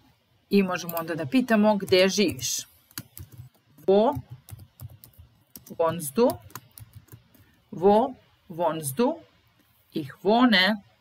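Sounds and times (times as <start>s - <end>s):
typing on computer keyboard: 1.8s - 7.4s.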